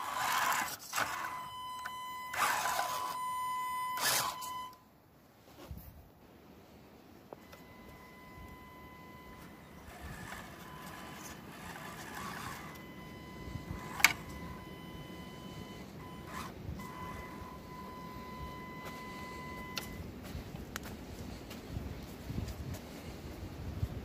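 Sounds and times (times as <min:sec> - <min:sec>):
electric motor whine: 0:00.0 - 0:03.2, 0:04.0 - 0:04.5, 0:07.4 - 0:20.0.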